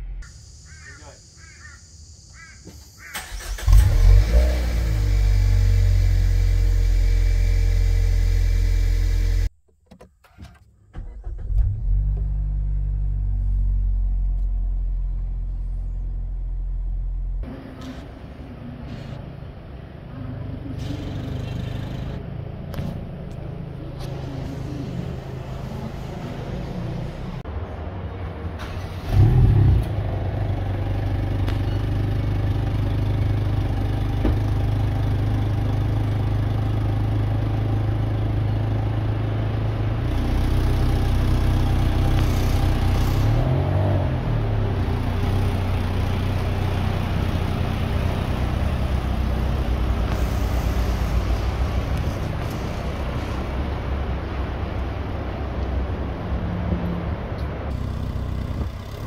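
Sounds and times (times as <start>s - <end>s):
car engine and exhaust: 0.0s - 59.0s
engine revving: 3.2s - 9.5s, 20.1s - 23.1s, 28.6s - 53.9s, 57.7s - 59.0s.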